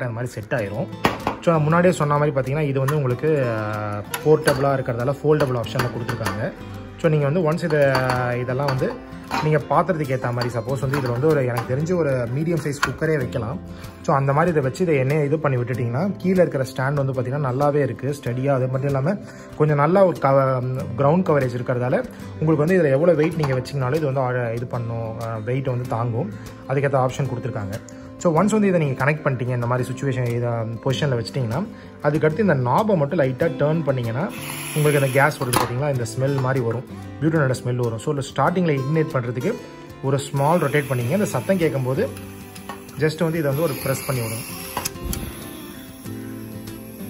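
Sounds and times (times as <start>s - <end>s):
background guitar music: 0.0s - 47.0s
metal canister clicks and clinks: 7.6s - 11.8s
man talking: 28.4s - 42.2s, 43.0s - 44.5s.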